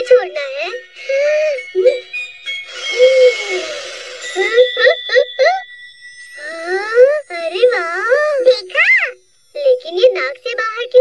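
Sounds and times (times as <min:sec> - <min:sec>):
background music: 0:00.0 - 0:09.7.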